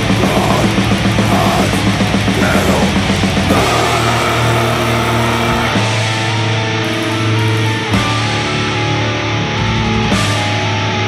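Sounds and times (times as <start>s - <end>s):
bass guitar: 0.0s - 11.0s
distorted electric guitars: 0.0s - 11.0s.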